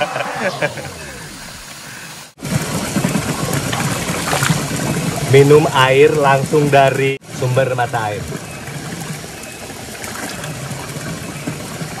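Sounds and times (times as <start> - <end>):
water pouring and splashing: 1.3 - 12.0.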